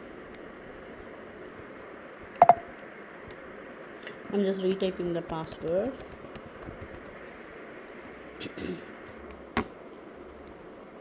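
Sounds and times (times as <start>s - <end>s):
computer keyboard typing: 2.4s - 2.6s, 4.7s - 7.2s.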